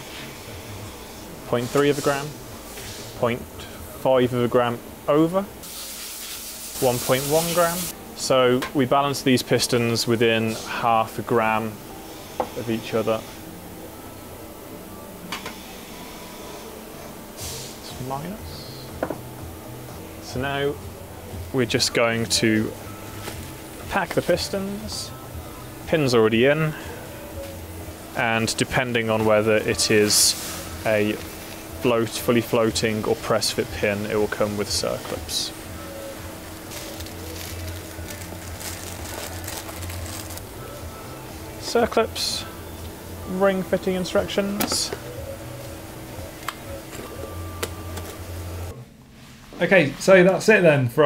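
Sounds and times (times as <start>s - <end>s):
low workshop hum: 0.0s - 51.0s
plastic packet rustling: 36.7s - 40.5s.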